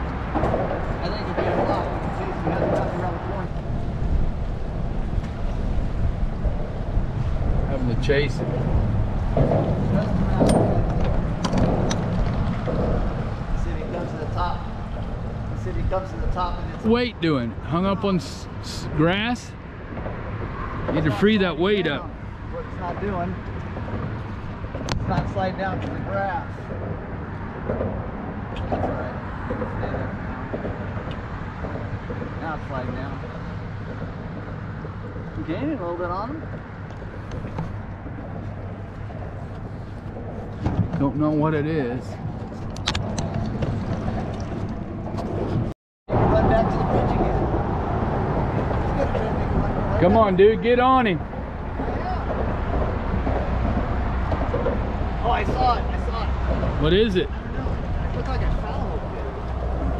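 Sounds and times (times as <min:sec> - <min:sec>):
boat motor humming: 0:00.0 - 0:25.8, 0:26.7 - 0:59.9
water noise: 0:00.0 - 0:59.9
wind buffeting microphone: 0:00.0 - 0:59.9
knocks: 0:09.3 - 0:13.5.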